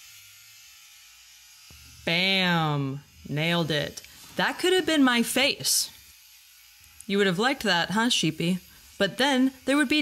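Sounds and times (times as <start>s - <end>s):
shearing handpiece buzzing: 0.0s - 10.0s.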